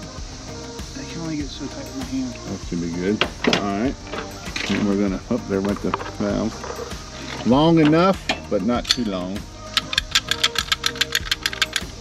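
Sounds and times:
ratcheting tube cutter clicking: 5.6s - 12.0s.

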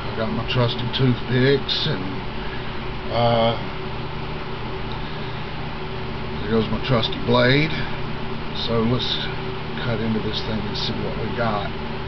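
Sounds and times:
appliance hum with hiss: 0.0s - 12.0s.

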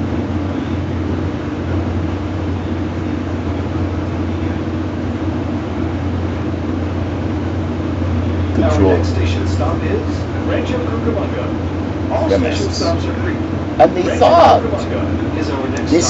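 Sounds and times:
vehicle cabin drone: 0.0s - 16.0s.

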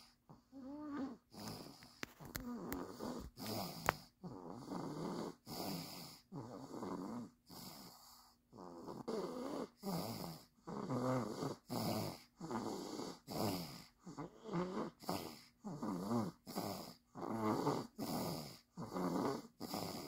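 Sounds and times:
toddler snoring: 0.0s - 20.0s.

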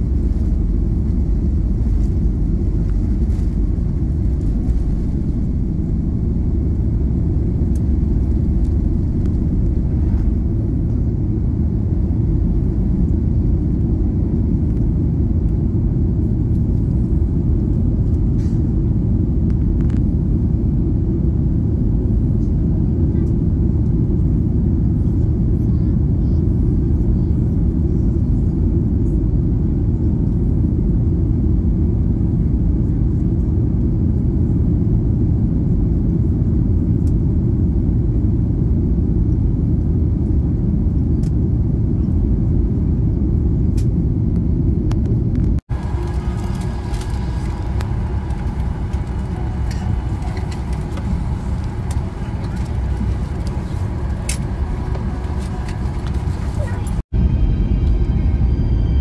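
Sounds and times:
airplane engines roaring in cabin: 0.0s - 59.0s
cabin hum: 44.9s - 57.0s.

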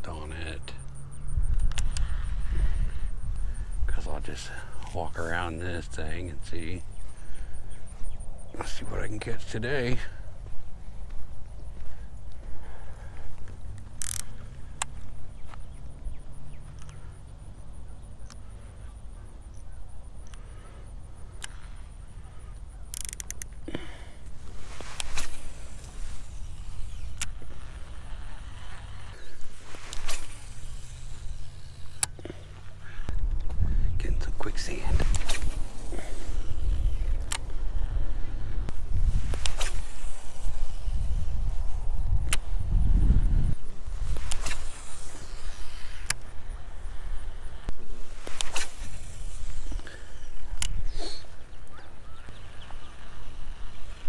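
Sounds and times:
fishing reel clicks: 0.6s - 4.0s, 13.7s - 15.0s, 16.7s - 17.1s, 21.1s - 33.5s, 34.4s - 54.0s
wind rumbling on microphone: 1.0s - 16.7s, 32.6s - 54.0s.

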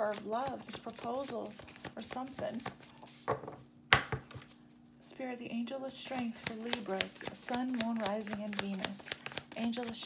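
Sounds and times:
cards tapping on a tabletop: 1.7s - 4.5s.

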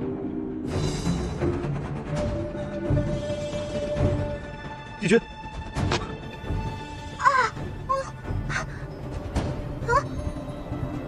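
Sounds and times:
dark background music: 0.0s - 11.0s.

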